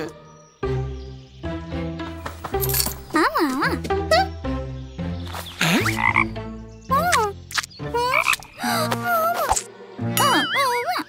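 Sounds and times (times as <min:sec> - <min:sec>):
cartoon frog croaking: 0:05.6 - 0:10.4.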